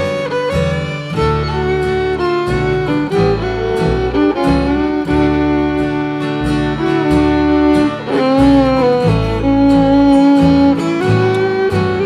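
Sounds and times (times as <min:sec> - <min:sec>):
fiddle melody: 0:00.0 - 0:12.0
strummed acoustic guitar: 0:00.0 - 0:12.0
upright bass: 0:00.0 - 0:12.0.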